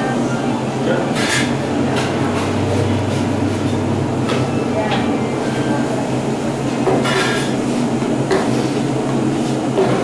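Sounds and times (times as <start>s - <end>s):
mechanical drone with low hum: 0.0s - 10.0s.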